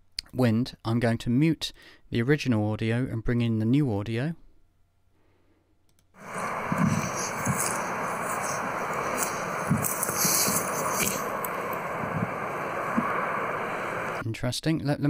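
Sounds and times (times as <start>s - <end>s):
road noise: 6.2s - 14.2s
wind hiss: 6.2s - 14.2s.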